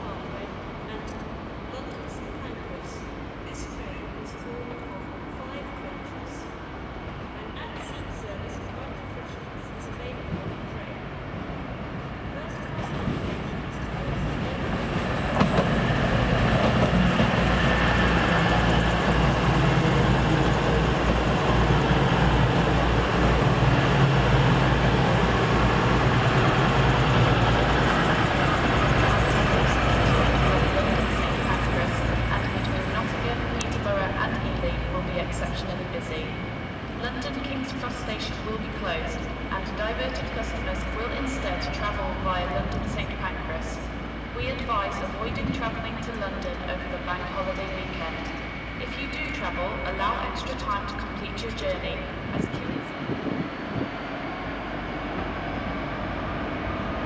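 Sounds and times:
diesel train running past: 0:00.0 - 0:57.0.

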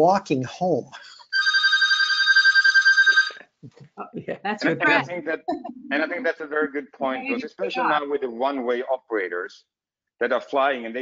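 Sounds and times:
telephone ringing electronic trill: 0:01.3 - 0:03.4.

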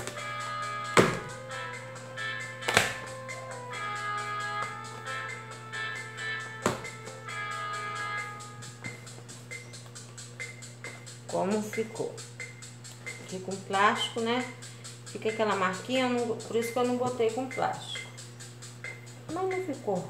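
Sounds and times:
background music: 0:00.0 - 0:20.0.

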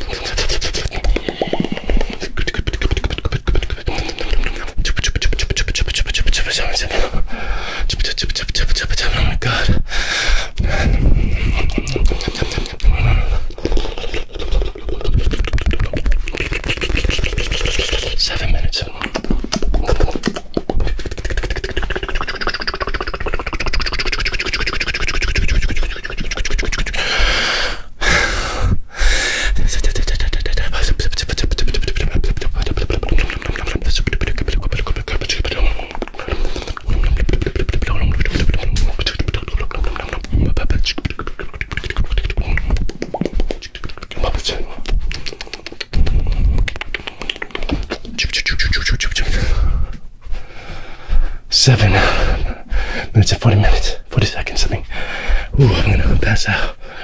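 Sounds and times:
mouth clicks pops and smacks: 0:00.0 - 0:07.0, 0:07.8 - 0:50.1, 0:51.0 - 0:56.8.

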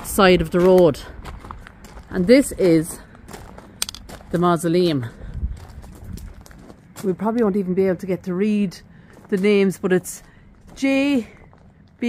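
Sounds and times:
footsteps crunching on gravel: 0:00.0 - 0:08.0, 0:08.6 - 0:12.0
low rumble: 0:05.0 - 0:07.0.

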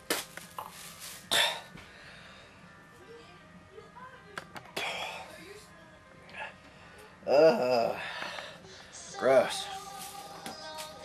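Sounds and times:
man retching and gagging: 0:07.3 - 0:08.0.

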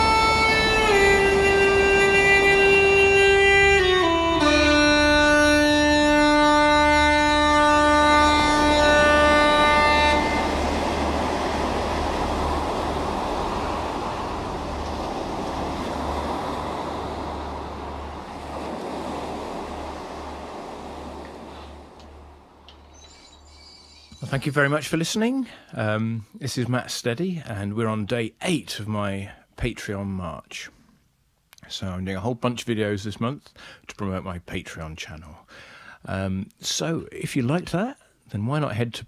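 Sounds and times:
uilleann pipes chord over drones: 0:00.0 - 0:14.6
breathy hiss: 0:33.5 - 0:33.9, 0:35.4 - 0:36.1.

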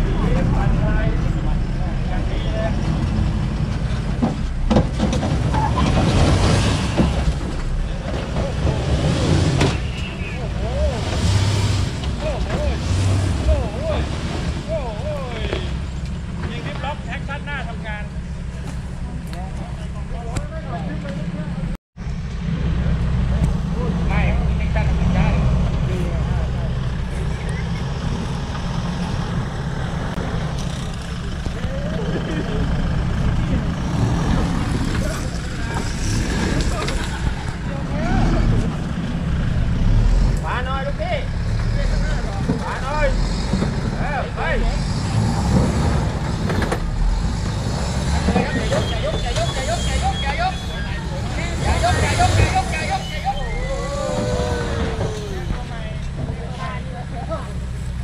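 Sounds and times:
onlookers chattering and calling: 0:00.0 - 0:04.7, 0:05.4 - 0:21.8, 0:22.4 - 0:58.0
truck engine under load: 0:00.0 - 0:58.0.

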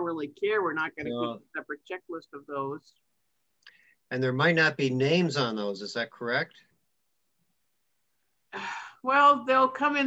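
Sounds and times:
person speaking: 0:00.0 - 0:02.8.

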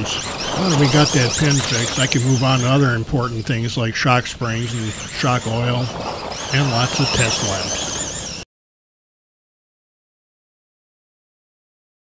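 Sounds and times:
electric motor high-pitched whine: 0:04.6 - 0:08.4.

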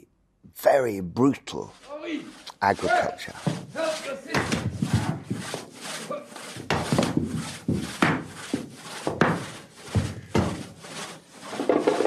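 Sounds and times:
rhythmic scraping and rubbing: 0:00.6 - 0:12.0.

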